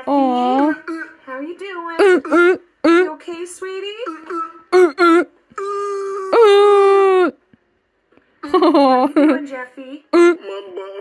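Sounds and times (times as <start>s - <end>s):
puppet voice wailing: 4.2s - 7.3s.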